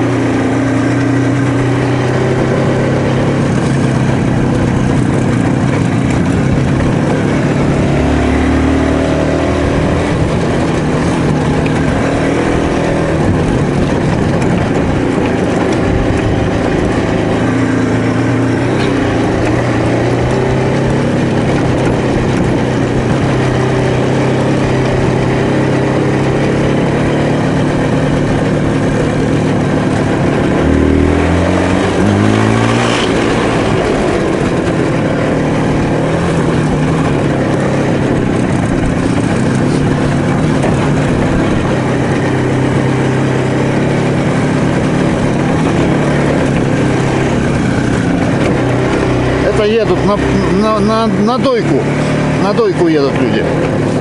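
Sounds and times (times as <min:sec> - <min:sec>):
two-stroke motorcycle engine running: 0:00.0 - 0:54.0.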